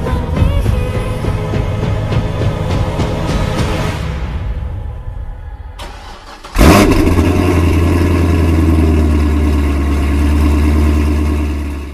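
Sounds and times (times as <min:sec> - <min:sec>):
car engine starting and idling: 0:05.8 - 0:11.9.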